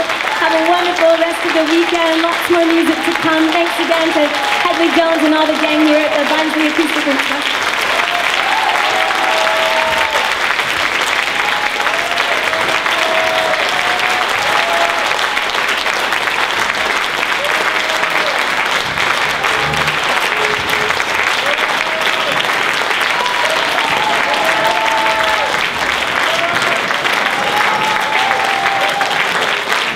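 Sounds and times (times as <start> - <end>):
audience applauding: 0.0 - 29.9
cheers and whoops: 2.8 - 5.0, 7.8 - 10.5, 11.1 - 16.6, 17.3 - 18.5, 19.2 - 29.9.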